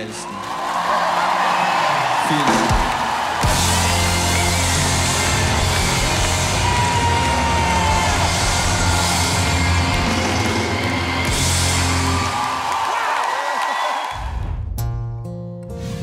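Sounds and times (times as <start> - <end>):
loud rock music: 2.4 - 12.5.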